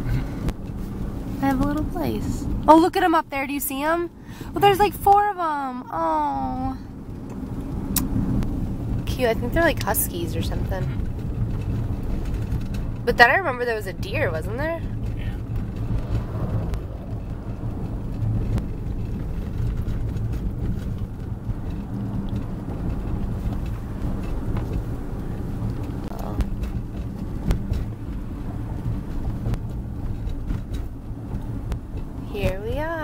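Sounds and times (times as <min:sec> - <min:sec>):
car engine and tyre rumble: 0:00.0 - 0:33.0.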